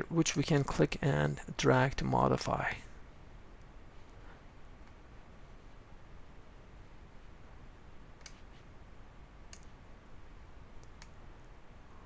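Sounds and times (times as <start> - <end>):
faint low hum: 0.0 - 12.0
computer mouse clicking: 8.2 - 8.5, 9.5 - 9.8, 10.8 - 11.2.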